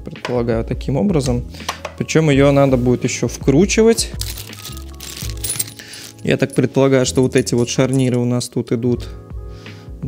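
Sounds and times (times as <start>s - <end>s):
quiet background music: 0.0s - 10.0s
small metal fittings clinking: 4.0s - 8.3s.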